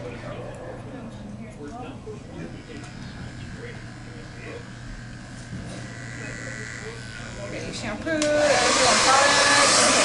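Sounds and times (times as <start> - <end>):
electric hair clippers buzzing: 2.4 - 10.0.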